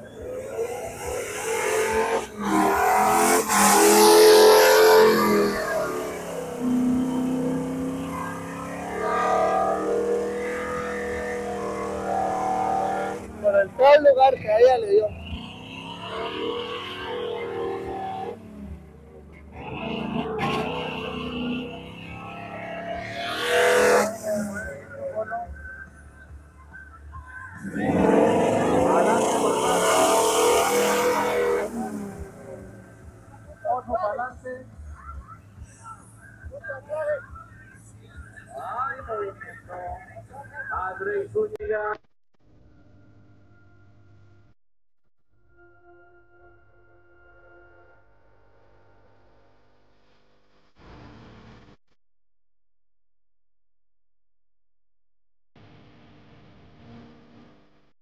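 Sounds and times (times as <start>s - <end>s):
truck engine revving: 0.0s - 13.8s, 15.0s - 25.9s, 27.3s - 33.6s
voices: 23.9s - 30.7s, 31.3s - 42.0s
music: 24.7s - 28.9s, 32.7s - 40.9s, 45.4s - 48.1s.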